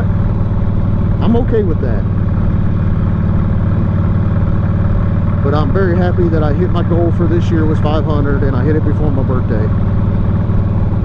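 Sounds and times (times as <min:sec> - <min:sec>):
motorcycle engine running: 0:00.0 - 0:11.0.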